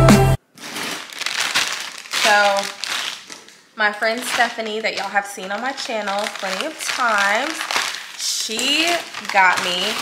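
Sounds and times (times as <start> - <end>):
packaging crinkling: 0.4 - 10.0.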